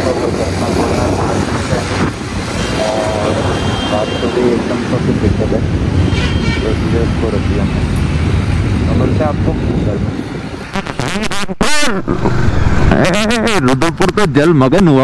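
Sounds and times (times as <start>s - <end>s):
road traffic: 0.0s - 15.0s
vehicle horn: 2.6s - 4.6s, 6.1s - 6.8s.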